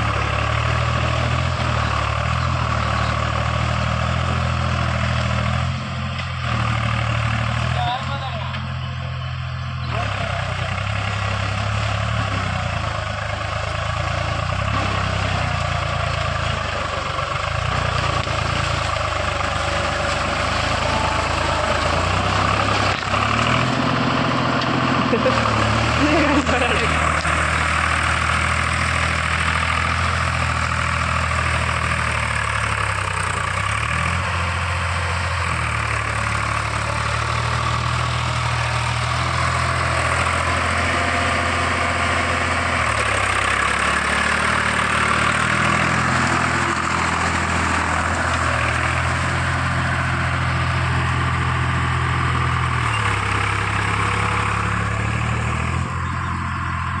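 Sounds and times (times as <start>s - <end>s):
diesel tractor engine running: 0.0s - 57.0s.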